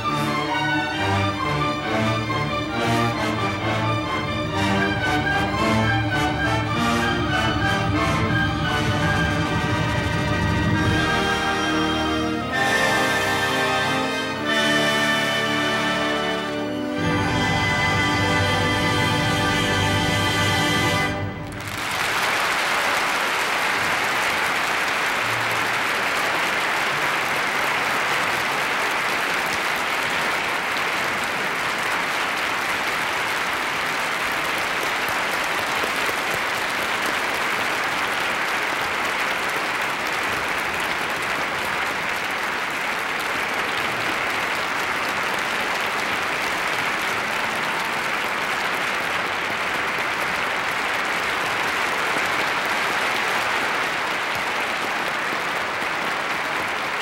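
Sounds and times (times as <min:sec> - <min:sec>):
audience applauding: 0:00.0 - 0:57.0.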